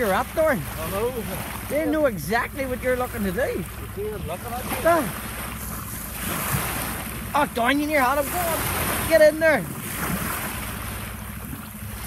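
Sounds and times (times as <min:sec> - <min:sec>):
water rushing along a hull: 0:00.0 - 0:12.0
wind rumbling on microphone: 0:02.7 - 0:12.0.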